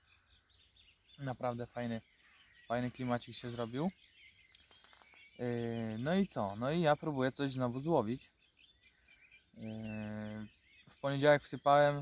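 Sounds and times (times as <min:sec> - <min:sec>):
faint birdsong: 0:00.0 - 0:12.0.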